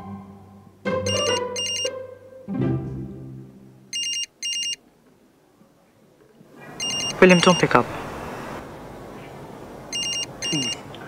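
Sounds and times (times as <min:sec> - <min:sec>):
mobile phone ringing: 0:01.0 - 0:01.9, 0:03.9 - 0:04.8, 0:06.8 - 0:08.6, 0:09.9 - 0:10.8.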